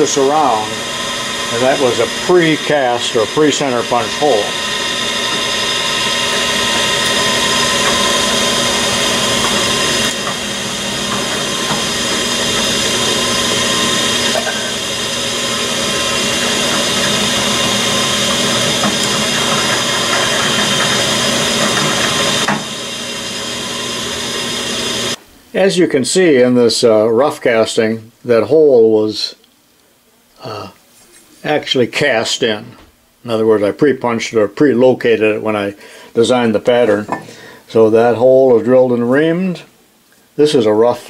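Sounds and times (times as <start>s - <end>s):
drill press hum and whine: 0.0s - 25.2s.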